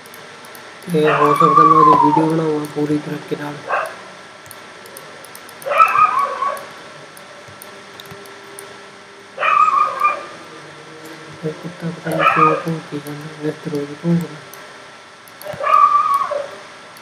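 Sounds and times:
faint clicks: 0:00.0 - 0:03.0, 0:03.8 - 0:08.8, 0:13.0 - 0:16.3.

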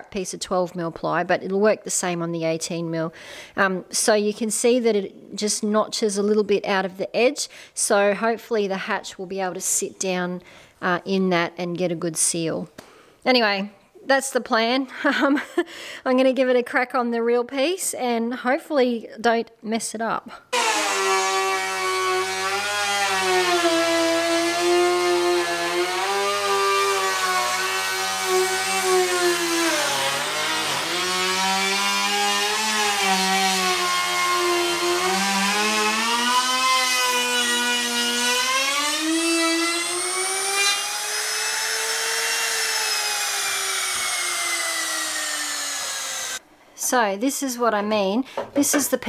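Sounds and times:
router whining cutting wood: 0:20.5 - 0:46.4.

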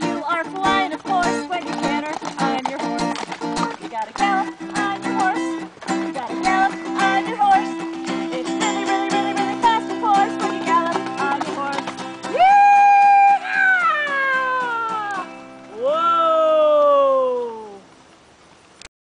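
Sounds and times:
acoustic guitar strumming: 0:00.0 - 0:12.6, 0:13.3 - 0:15.7
woman singing: 0:00.0 - 0:15.4.

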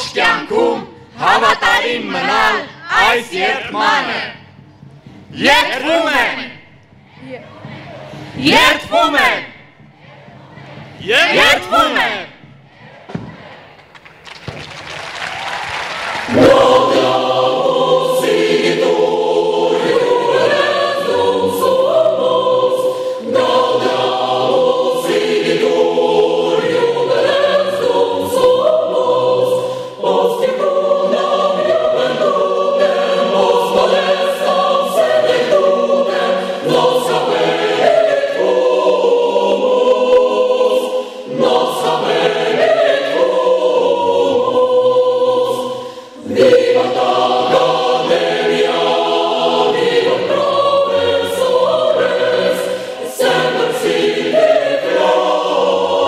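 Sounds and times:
choir singing: 0:00.0 - 0:13.9, 0:15.9 - 0:56.0.

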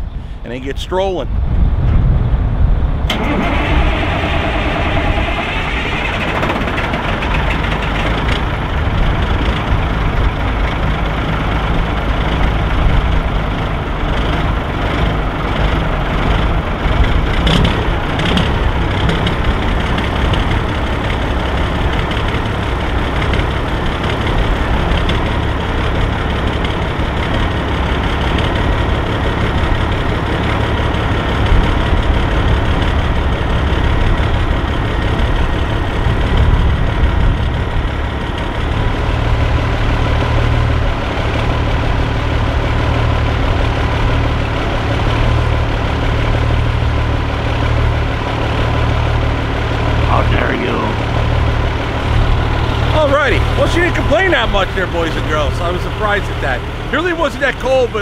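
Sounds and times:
diesel engine starting and idling: 0:02.8 - 0:58.0.

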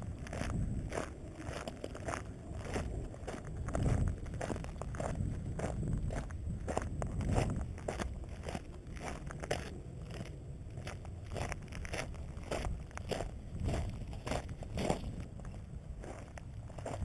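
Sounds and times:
footsteps crunching on gravel: 0:00.0 - 0:17.0
steady low rumble: 0:00.0 - 0:17.0.

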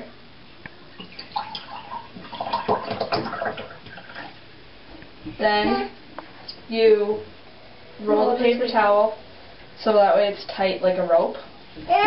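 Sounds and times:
water pouring into glass: 0:01.0 - 0:04.2.

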